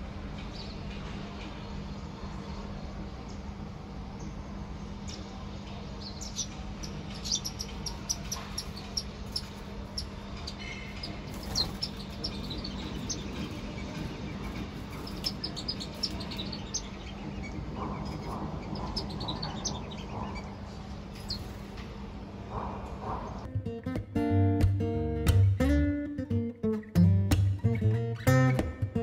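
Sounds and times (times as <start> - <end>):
steady low hum: 0.0 - 29.0
small birds chirping: 0.4 - 23.5.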